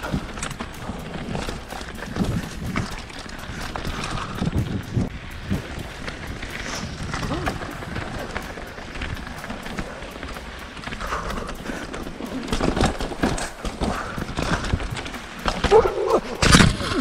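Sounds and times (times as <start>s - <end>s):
mountain bike clattering over rocks: 0.0s - 17.0s.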